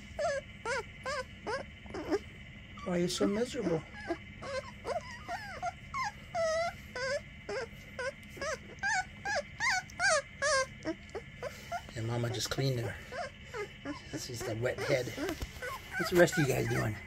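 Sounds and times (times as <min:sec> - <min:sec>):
puppy whining: 0:00.0 - 0:17.0.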